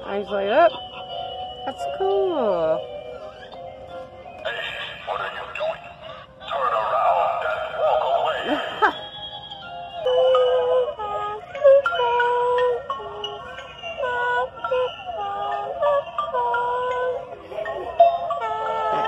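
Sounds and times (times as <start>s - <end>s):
tinny electronic toy tune: 0.0s - 6.4s, 8.3s - 19.0s.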